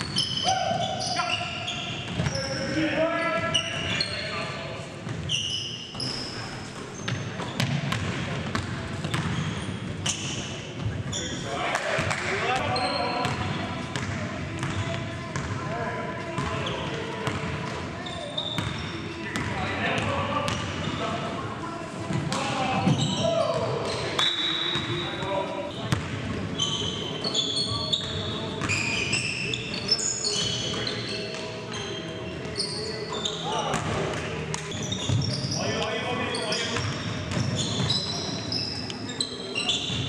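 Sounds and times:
sneakers squeaking: 0.0 - 40.0.

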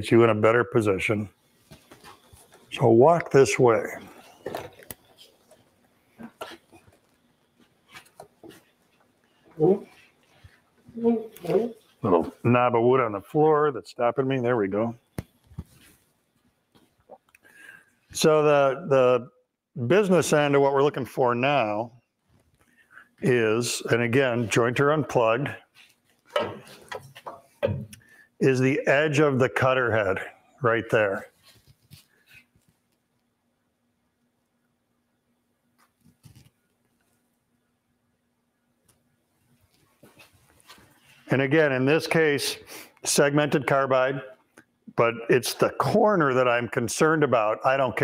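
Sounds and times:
camera stand knocks and scuffs: 26.3 - 28.0
clunks of guard being handled: 26.3 - 28.0.

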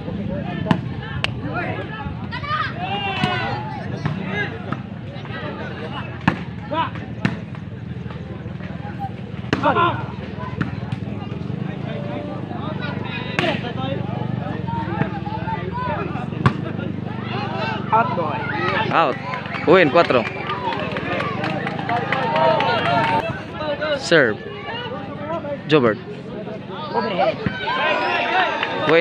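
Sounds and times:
crowd chatter and calls: 0.0 - 29.0.

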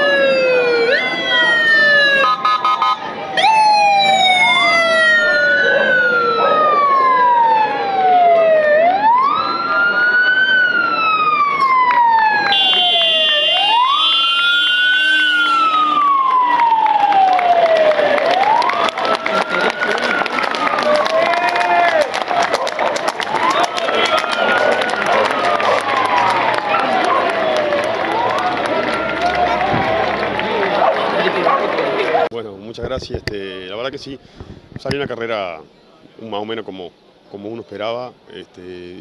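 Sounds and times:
steady high siren tone: 0.0 - 21.0, 24.2 - 30.4
police sirens wailing: 0.0 - 32.3.

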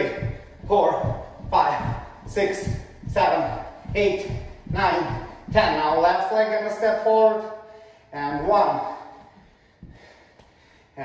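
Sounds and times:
bare foot thud on wooden floor: 0.0 - 6.0.

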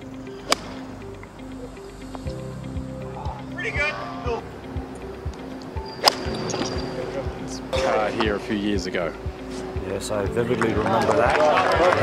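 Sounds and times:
background music with held notes: 0.0 - 12.0
golf club striking ball: 0.4 - 0.9, 6.0 - 6.4.

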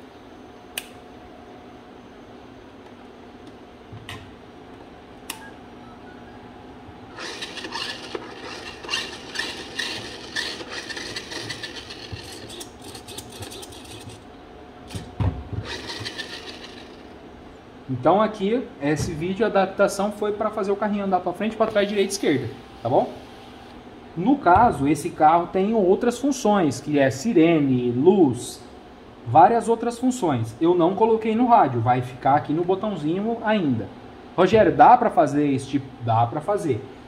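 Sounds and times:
toy car motor whirring: 7.2 - 14.2, 15.6 - 17.0.

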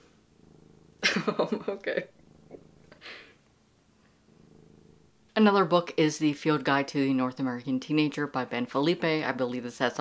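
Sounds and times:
cat purring: 0.0 - 10.0
breathy puff: 2.9 - 3.4.

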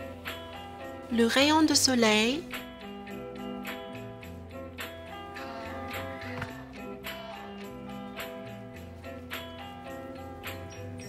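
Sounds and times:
background music chords and bass: 2.0 - 11.0.

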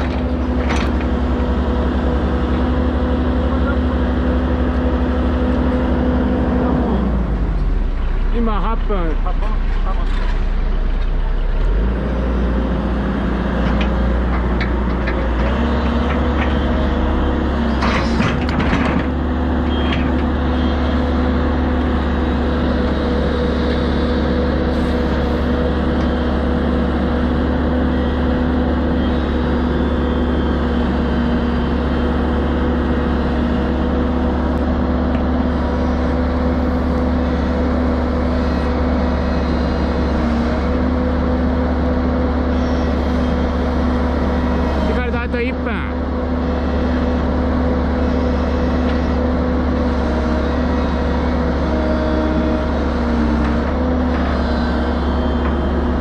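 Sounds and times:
diesel engine rumbling: 0.0 - 56.0.

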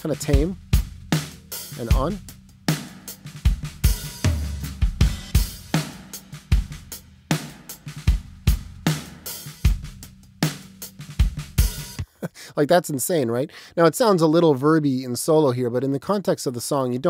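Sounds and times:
drum kit playing a groove: 0.0 - 12.1.

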